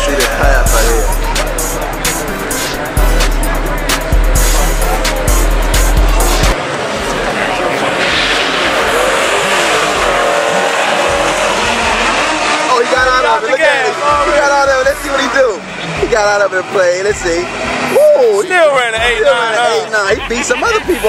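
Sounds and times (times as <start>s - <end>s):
spectators shouting: 0.0s - 16.0s, 17.2s - 21.0s
drag race cars at full throttle: 0.0s - 21.0s
hip hop music with heavy bass: 0.0s - 21.0s
tires squealing: 0.0s - 21.0s.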